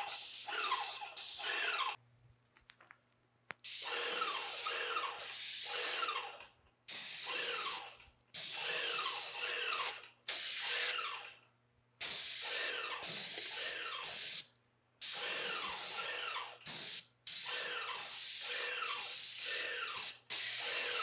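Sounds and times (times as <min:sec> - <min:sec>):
paint sprayer gun hissing: 0:00.0 - 0:02.0, 0:03.6 - 0:11.3, 0:12.0 - 0:21.0.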